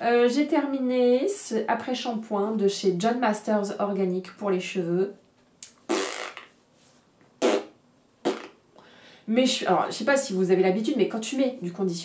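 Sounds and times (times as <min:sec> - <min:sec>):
woman blowing puffs of breath: 0:08.8 - 0:09.3.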